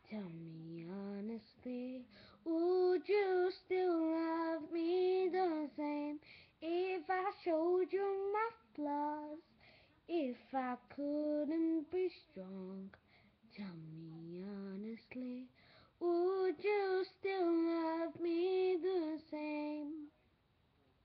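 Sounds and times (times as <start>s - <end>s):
girl singing unaccompanied: 0.0s - 20.2s.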